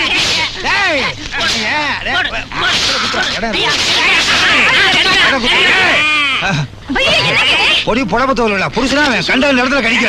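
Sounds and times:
women shrieking and wailing: 0:03.0 - 0:07.9.

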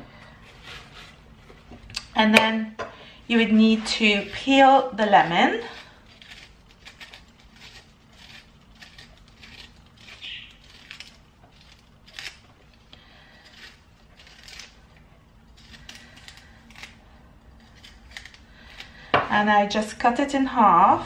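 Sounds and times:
knife scraping lemon rind: 0:03.6 - 0:19.1.

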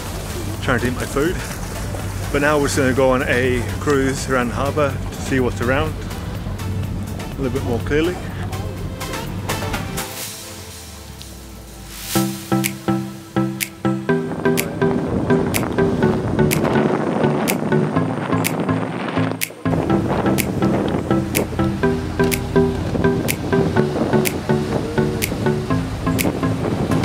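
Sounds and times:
tropical house music: 0:00.0 - 0:27.0.

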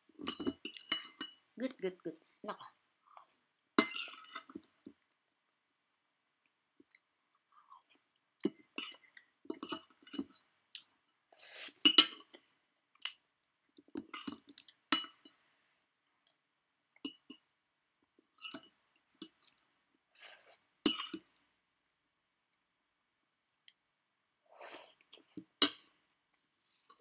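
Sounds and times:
fork clinking on ceramic plate: 0:00.2 - 0:01.4, 0:03.8 - 0:04.6, 0:20.9 - 0:21.3.

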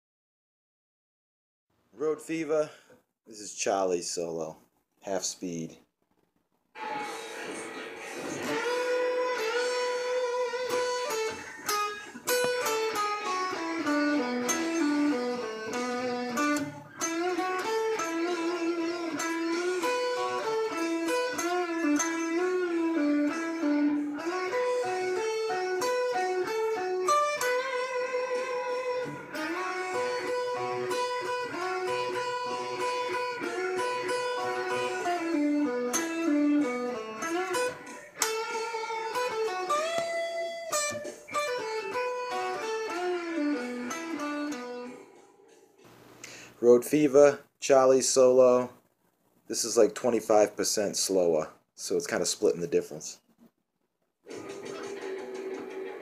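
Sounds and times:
electric guitar blues-rock solo: 0:06.8 - 0:45.1, 0:54.3 - 0:56.0.

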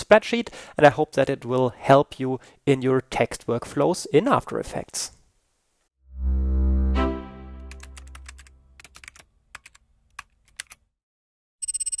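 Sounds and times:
synth chord: 0:06.0 - 0:08.8.

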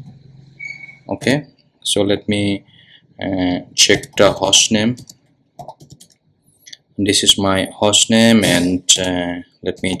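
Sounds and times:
computer keyboard keystrokes: 0:05.0 - 0:06.2.

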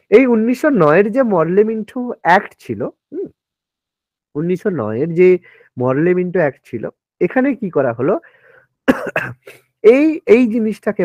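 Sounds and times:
man speaking: 0:00.0 - 0:03.4, 0:04.4 - 0:08.2, 0:09.8 - 0:11.0
man coughing: 0:08.9 - 0:09.7.

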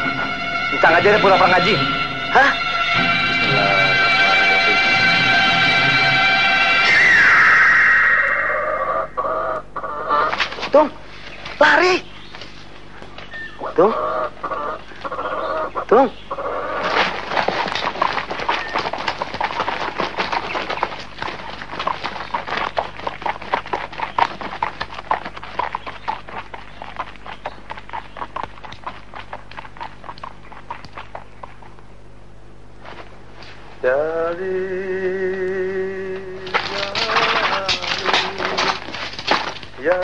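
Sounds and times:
brief animal call: 0:05.3 - 0:10.5
horse hooves clip-clopping: 0:16.8 - 0:32.1, 0:35.2 - 0:40.0.

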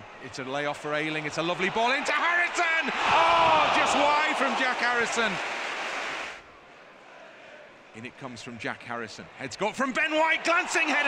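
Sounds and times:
loud crowd reaction: 0:01.3 - 0:06.4, 0:10.1 - 0:11.0.

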